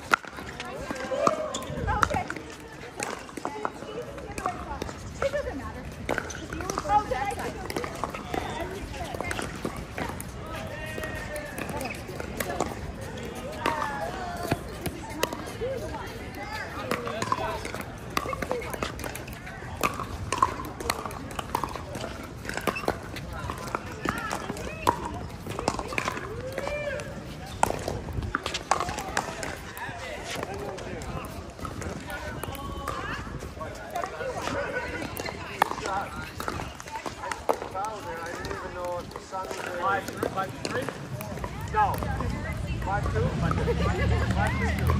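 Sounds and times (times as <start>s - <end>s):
many voices chattering: 0.0s - 44.9s
paddles hitting balls: 0.0s - 44.9s.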